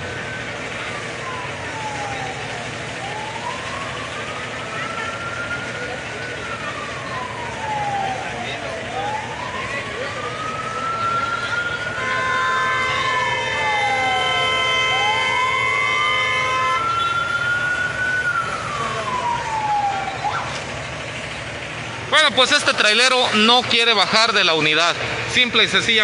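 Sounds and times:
emergency siren wailing: 0.0s - 26.0s.

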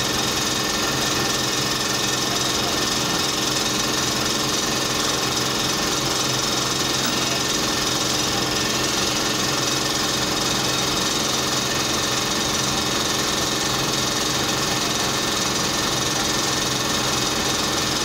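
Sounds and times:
steady mechanical hum: 0.0s - 18.0s.

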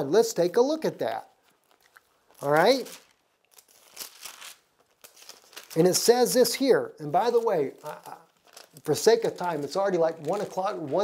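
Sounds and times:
book pages rustling: 7.3s - 11.0s.

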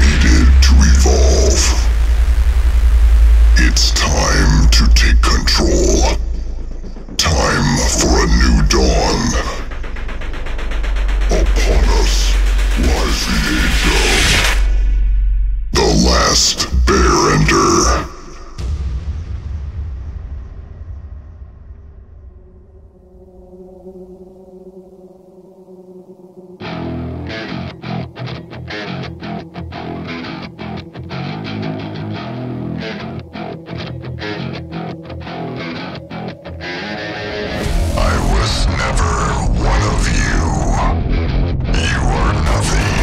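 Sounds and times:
person speaking: 0.0s - 1.9s, 3.6s - 6.5s, 7.1s - 9.8s, 11.3s - 14.6s, 15.8s - 18.6s
low rumble: 0.0s - 27.3s, 37.3s - 43.0s
dense music: 0.0s - 28.2s, 30.6s - 43.0s
deep electronic drone: 0.0s - 31.0s, 32.2s - 43.0s.

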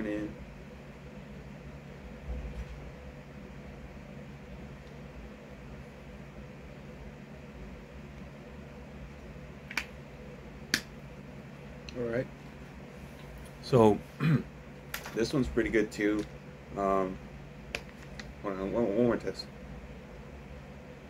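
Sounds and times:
low room hum: 0.0s - 21.0s.

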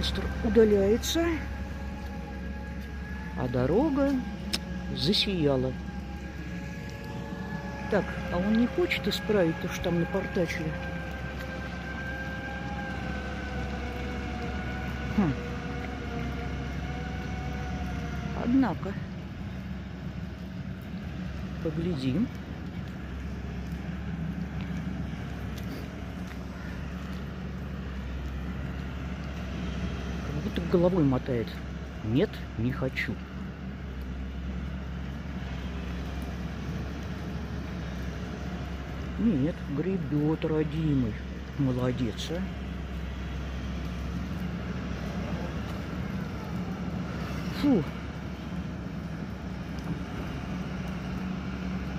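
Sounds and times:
diesel engine droning: 0.0s - 51.9s.

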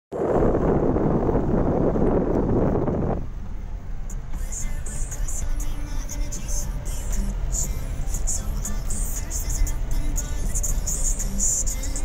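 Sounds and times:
wind buffeting microphone: 0.1s - 4.0s
low engine and road rumble: 0.1s - 12.0s.

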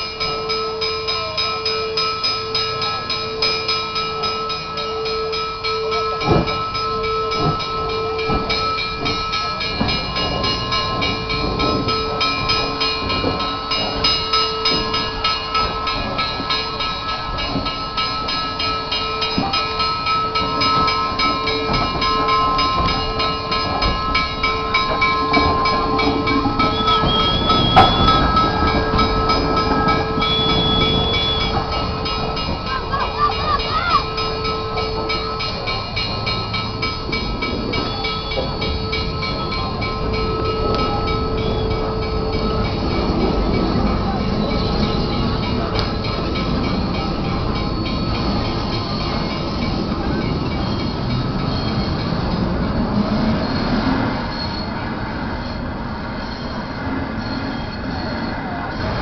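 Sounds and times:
high wheel squeal: 0.0s - 59.0s
locomotive rumble on rails: 0.0s - 59.0s.

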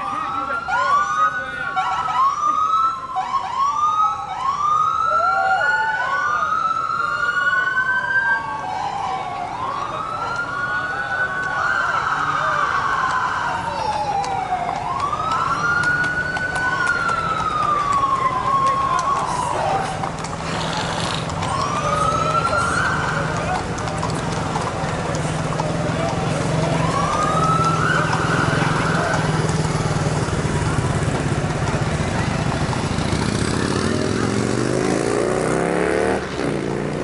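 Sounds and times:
police sirens wailing: 0.0s - 37.0s.

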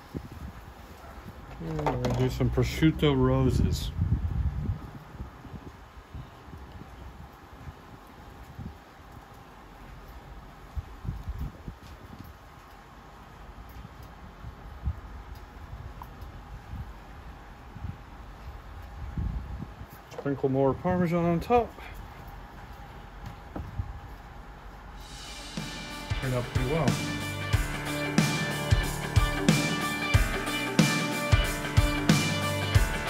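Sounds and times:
wind buffeting microphone: 0.0s - 1.6s, 3.2s - 10.0s, 10.6s - 12.6s, 13.5s - 20.1s, 22.0s - 24.6s.

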